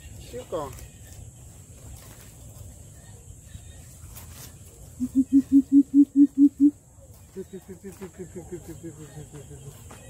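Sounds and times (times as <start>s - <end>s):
bird giving deep hoots: 5.0s - 6.8s.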